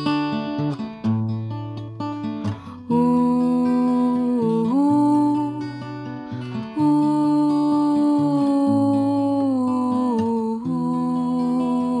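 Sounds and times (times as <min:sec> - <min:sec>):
guitar accompaniment: 0:00.0 - 0:12.0
woman singing wordless ooh: 0:02.7 - 0:12.0.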